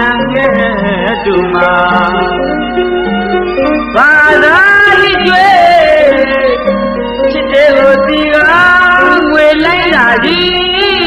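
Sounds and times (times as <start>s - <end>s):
woman singing in high voice: 0.0s - 2.2s, 4.0s - 6.6s, 7.3s - 11.0s
instrumental accompaniment: 0.0s - 11.0s.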